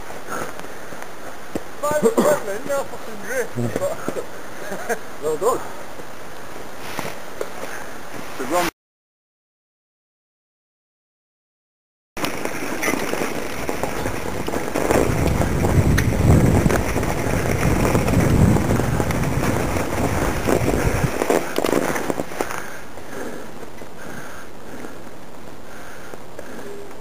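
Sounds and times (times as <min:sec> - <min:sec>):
sharp crackles: 0:00.0 - 0:08.7, 0:12.2 - 0:27.0
steady hiss: 0:00.0 - 0:08.7, 0:12.2 - 0:27.0
camera microphone rumbling and rubbing: 0:12.2 - 0:24.0.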